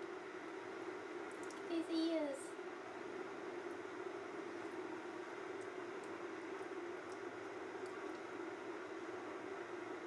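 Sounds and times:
low background hum: 0:00.0 - 0:10.0
faint clicks: 0:01.3 - 0:01.7.

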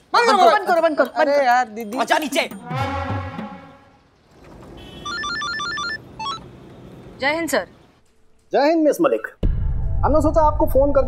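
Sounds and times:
phone ringtone beeping: 0:05.0 - 0:06.4.

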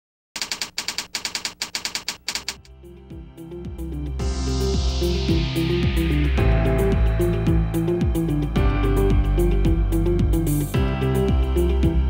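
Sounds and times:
keyboard typing clicks: 0:00.4 - 0:02.7.

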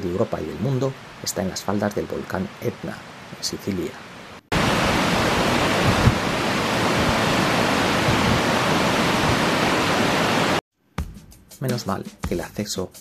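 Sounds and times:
stream rushing over rocks: 0:00.0 - 0:10.6.

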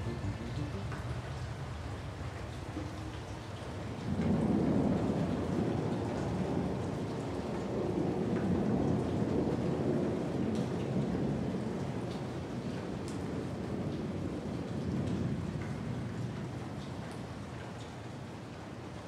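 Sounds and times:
steady rain: 0:00.0 - 0:19.0
rolling thunder: 0:03.9 - 0:10.5.

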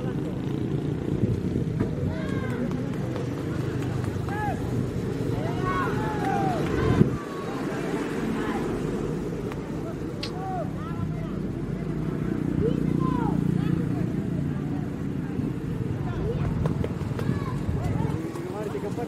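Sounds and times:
people talking outdoors: 0:00.0 - 0:19.0.

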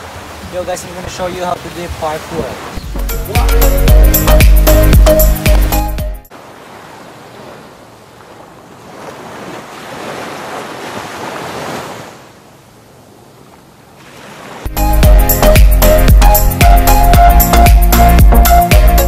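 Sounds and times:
small waves washing on sand: 0:00.0 - 0:02.8, 0:06.3 - 0:12.4, 0:13.9 - 0:14.7
music: 0:02.8 - 0:06.3, 0:14.7 - 0:19.0.

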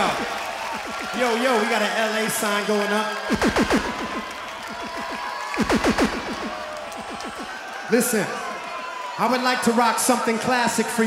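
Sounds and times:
turntable falling-pitch sweeps: 0:00.0 - 0:01.3, 0:03.3 - 0:07.6
crowd noise: 0:00.0 - 0:11.0.

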